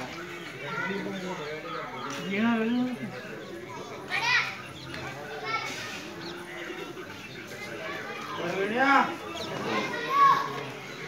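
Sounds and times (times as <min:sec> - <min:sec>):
background voices of children: 0:00.0 - 0:02.3, 0:03.0 - 0:11.0.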